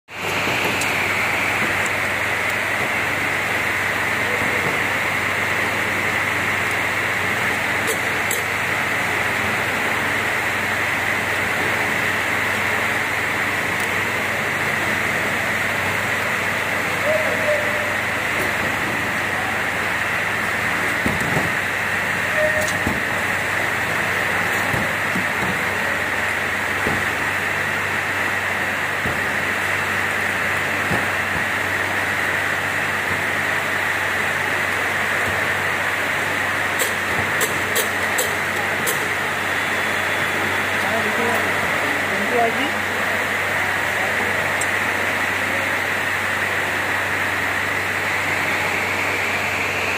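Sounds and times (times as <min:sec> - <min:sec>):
cap sealing machine hiss: 0:17.1 - 0:32.6, 0:36.7 - 0:40.6.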